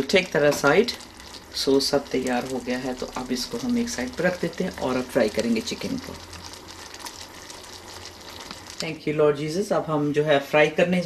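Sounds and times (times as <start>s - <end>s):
sauce simmering and bubbling: 0.0s - 9.0s.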